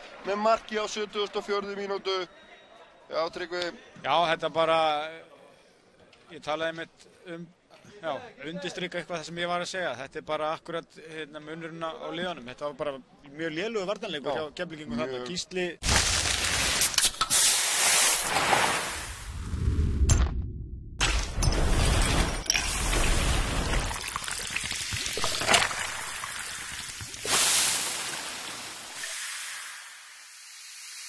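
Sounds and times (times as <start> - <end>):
fizzing hiss of soda: 16.2 - 19.3, 22.5 - 31.0.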